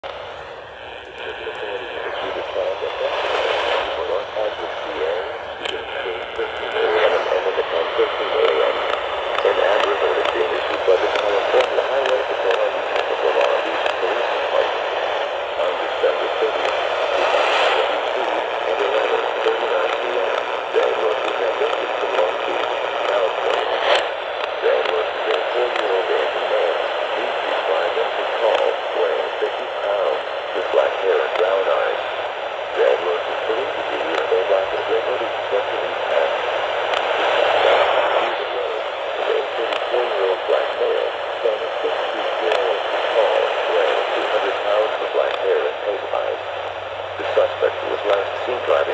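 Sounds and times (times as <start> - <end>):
radio static: 0.0 - 48.9
voice reading alert over radio: 0.0 - 48.9.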